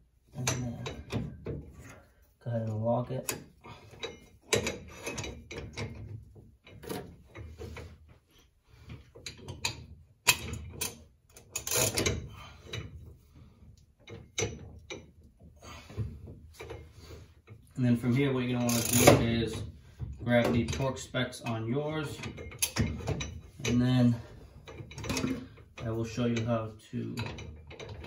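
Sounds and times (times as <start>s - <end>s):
ratchet and metal tool clicking: 9.5s - 12.2s, 18.6s - 19.2s.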